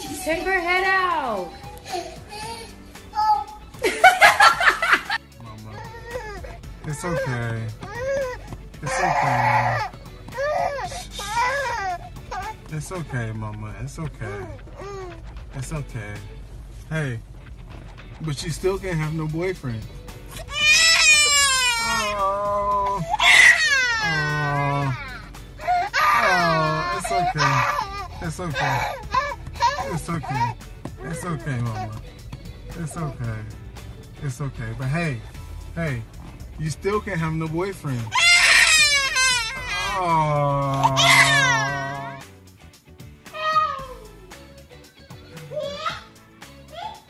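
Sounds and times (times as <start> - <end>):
baby crying: 1.2 - 3.7, 5.1 - 12.6, 14.3 - 15.2, 20.3 - 32.1, 38.1 - 42.2, 43.3 - 44.1, 45.4 - 46.1.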